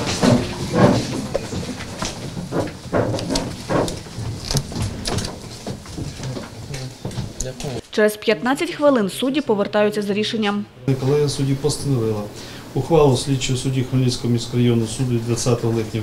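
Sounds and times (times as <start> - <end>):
knocks and clatters: 0.0 - 7.8
shuffling movement: 0.0 - 8.0
murmuring voices: 6.1 - 7.8
steady low hum: 10.8 - 16.0.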